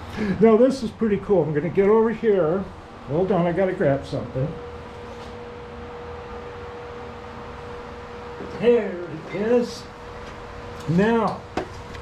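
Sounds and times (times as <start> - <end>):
milling machine hum: 0.0 - 12.0.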